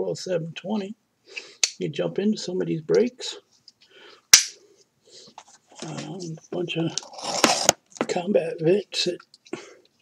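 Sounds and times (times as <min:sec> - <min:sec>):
person speaking: 0:01.7 - 0:03.5, 0:05.7 - 0:09.3
sharp snap: 0:04.4 - 0:04.6
faint handling sounds: 0:04.7 - 0:08.2.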